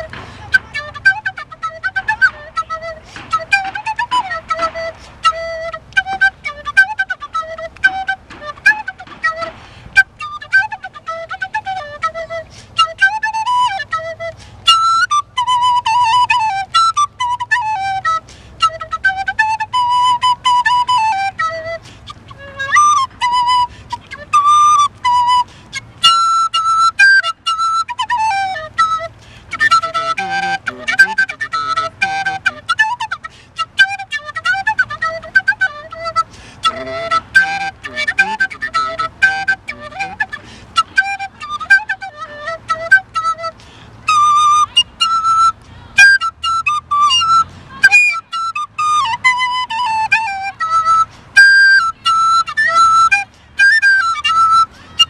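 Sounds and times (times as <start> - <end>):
end-blown flute melody: 0.0 - 55.0.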